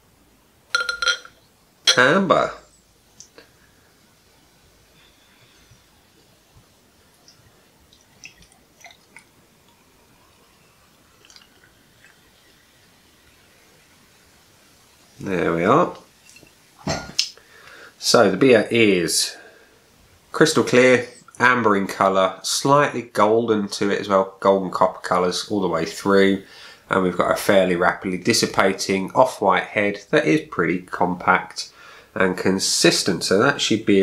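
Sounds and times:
ringing glassy clinks: 0.8 - 1.3
glass bottle set down: 0.8 - 2.0, 16.2 - 17.2
beer pouring into glass: 7.8 - 12.4.

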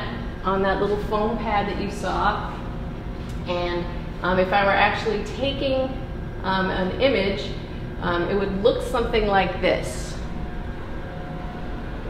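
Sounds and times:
scanner rotating whir: 0.0 - 12.0.

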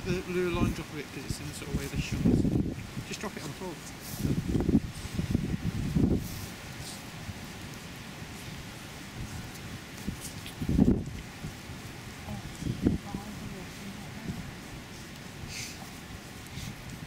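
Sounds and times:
steady outdoor rush: 0.0 - 17.0
wind buffeting microphone: 0.0 - 17.0
faint rustling and ticks: 0.2 - 17.0.

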